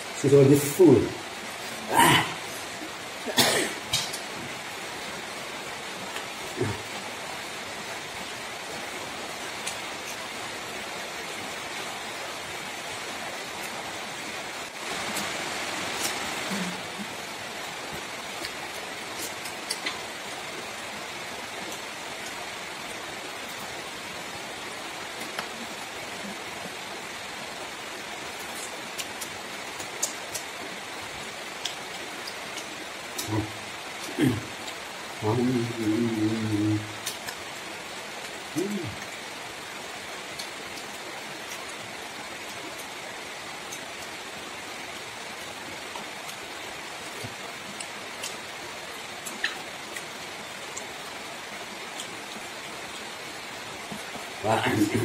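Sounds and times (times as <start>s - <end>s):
steady background hiss: 0.0s - 55.0s
people eating and chewing: 18.3s - 20.1s.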